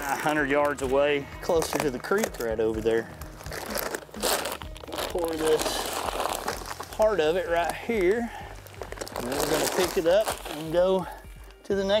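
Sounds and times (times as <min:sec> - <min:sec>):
plastic bag crinkling: 0:00.0 - 0:11.6.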